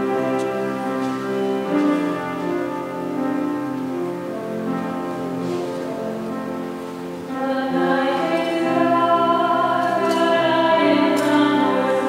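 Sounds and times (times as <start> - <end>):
keyboard accompaniment: 0.0 - 12.0
people singing a hymn: 7.3 - 12.0.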